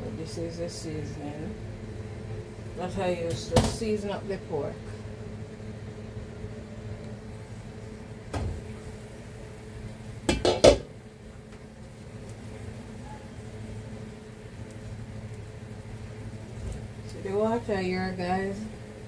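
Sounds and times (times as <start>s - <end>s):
cookware knock: 10.3s - 10.9s
pots and lids clanking: 10.3s - 10.9s.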